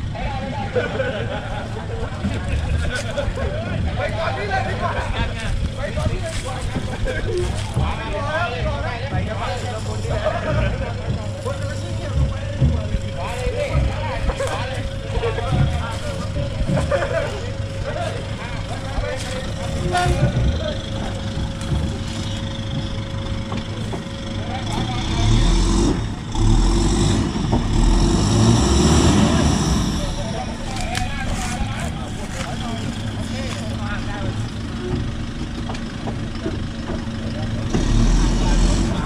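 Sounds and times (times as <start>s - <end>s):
truck engine running at low revs: 0.0s - 39.0s.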